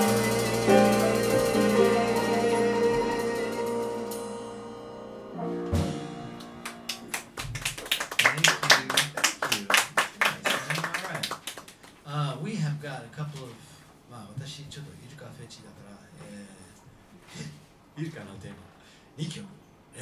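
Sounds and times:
jazz band closing chord: 0.0s - 7.4s
audience clapping: 6.4s - 12.0s.

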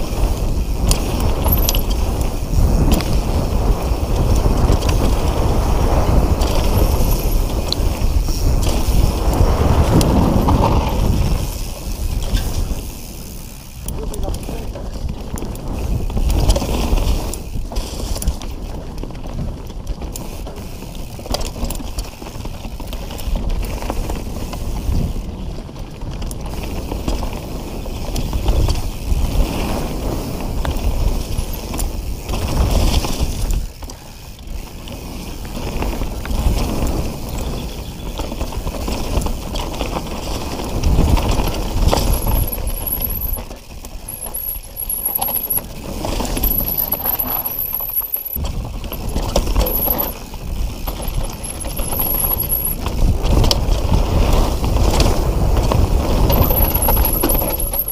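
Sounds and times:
bike tyres on leaves and dirt: 0.0s - 57.9s
bike parts rattling and knocking: 0.6s - 24.1s, 35.6s - 57.9s.

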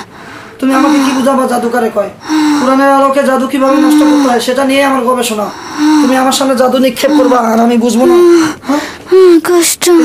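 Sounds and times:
person moaning cry: 2.2s - 5.0s, 5.8s - 10.0s.

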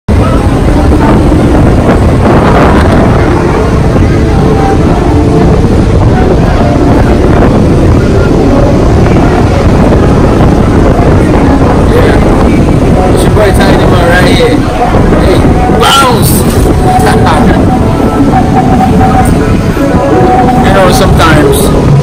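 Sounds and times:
ocean surf breaking: 0.1s - 22.0s
wind buffeting microphone: 0.1s - 22.0s.

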